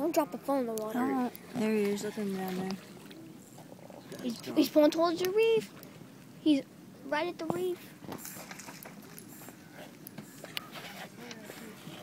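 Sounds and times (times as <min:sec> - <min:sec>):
faint background talking: 0:00.0 - 0:05.8, 0:06.4 - 0:12.0.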